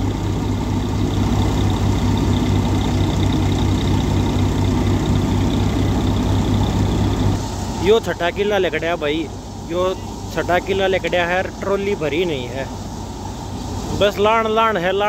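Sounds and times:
tractor diesel engine running: 0:00.0 - 0:15.0.

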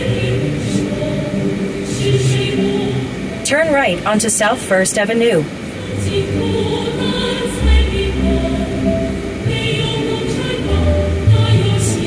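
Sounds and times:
choir holding long notes: 0:00.0 - 0:04.6, 0:05.5 - 0:12.0.

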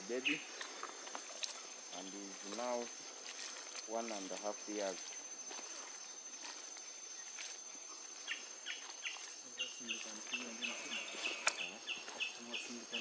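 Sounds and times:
high-pitched insect whine: 0:00.0 - 0:13.0.

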